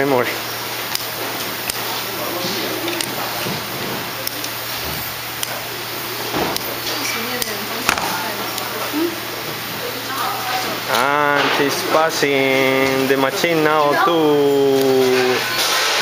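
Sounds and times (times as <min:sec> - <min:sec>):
steady electrical hum: 0:00.0 - 0:16.0
distant voices talking: 0:01.2 - 0:16.0.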